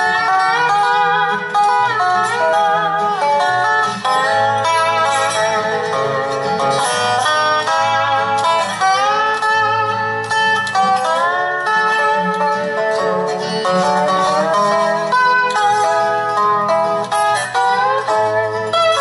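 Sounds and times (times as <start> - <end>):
slide guitar melody: 0.0 - 19.0.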